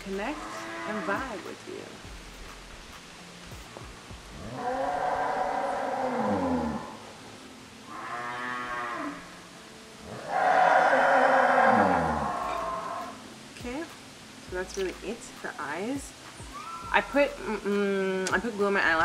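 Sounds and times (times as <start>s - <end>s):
cows mooing: 0.0s - 1.5s, 4.4s - 7.3s, 7.9s - 13.2s.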